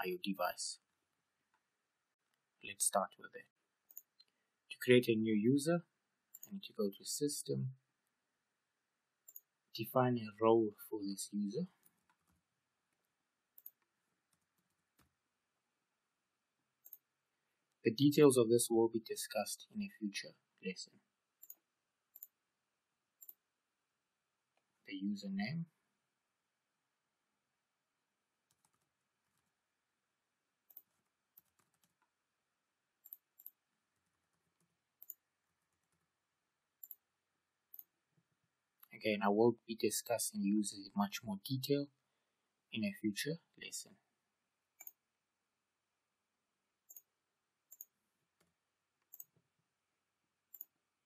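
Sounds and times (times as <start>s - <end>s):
keyboard and mouse clicks: 13.6s - 15.1s, 28.5s - 29.5s, 30.7s - 32.1s, 33.0s - 36.0s, 37.7s - 37.9s, 44.8s - 45.0s, 47.7s - 49.4s, 50.5s - 50.8s.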